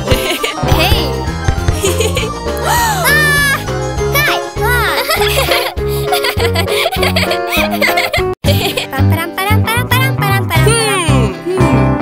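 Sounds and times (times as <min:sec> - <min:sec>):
cartoon music with bouncy bass: 0:00.0 - 0:12.0
cartoon kittens giggling: 0:04.8 - 0:08.9.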